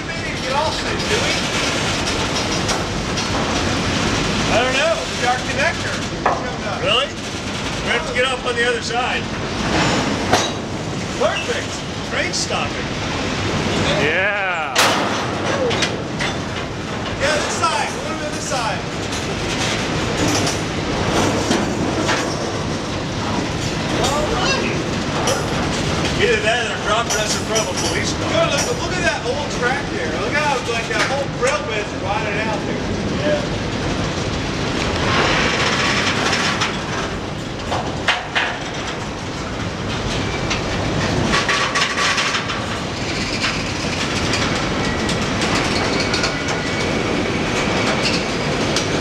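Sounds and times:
rail joint clicks: 0.0s - 4.5s, 14.8s - 29.2s, 33.7s - 49.0s
wheels rumbling on rail: 0.0s - 49.0s.

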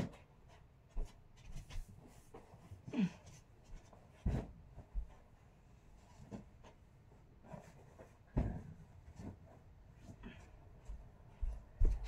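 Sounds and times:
bedding rustling: 0.0s - 12.0s.

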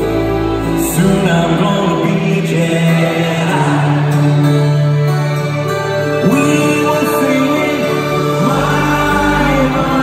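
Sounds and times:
band and orchestra holding a chord: 0.0s - 10.0s.

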